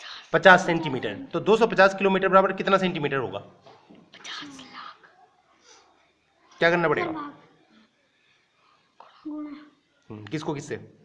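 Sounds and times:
person whispering softly: 0:04.2 - 0:05.9
faint breath: 0:05.5 - 0:06.1, 0:07.7 - 0:09.3.

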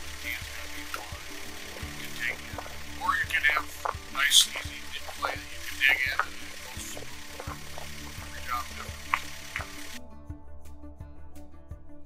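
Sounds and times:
steady outdoor hiss: 0:00.0 - 0:10.0
faint background music: 0:00.0 - 0:12.0.

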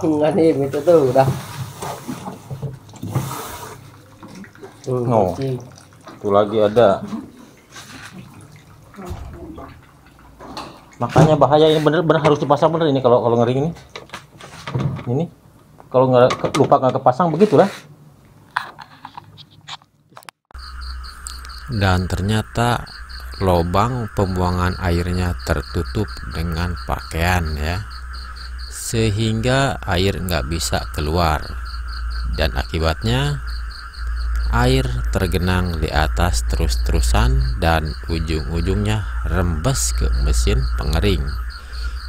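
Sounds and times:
insects chirping: 0:00.0 - 0:14.3, 0:20.5 - 0:42.0
water trickling and splashing: 0:00.5 - 0:12.8, 0:21.1 - 0:42.0
steady low rumble: 0:20.6 - 0:42.0.

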